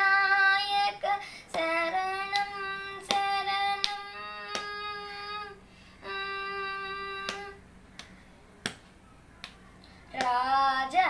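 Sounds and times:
hand strikes: 7.2s - 10.4s.

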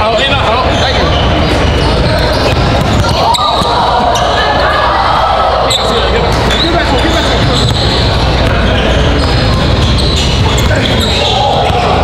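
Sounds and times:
crowd chatter: 0.0s - 12.0s
sneaker squeaks: 0.5s - 4.5s, 5.6s - 12.0s
ball bouncing on hardwood court: 2.3s - 3.8s, 9.3s - 12.0s.

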